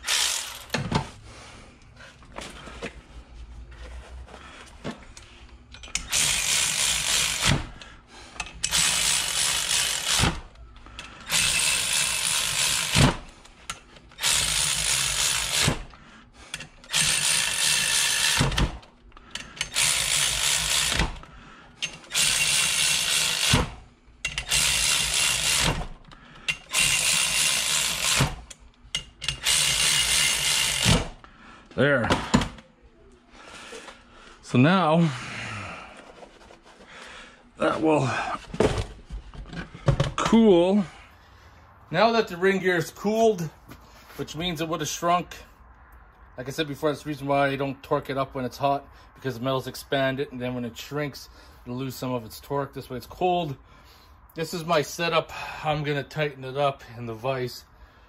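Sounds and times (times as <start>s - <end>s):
cordless electric ratchet running: 0.0s - 0.7s, 5.9s - 7.8s, 8.6s - 10.6s, 11.2s - 13.3s, 14.1s - 15.9s, 16.5s - 31.2s
ratchet sharp click: 21.8s - 25.8s, 26.4s - 31.1s.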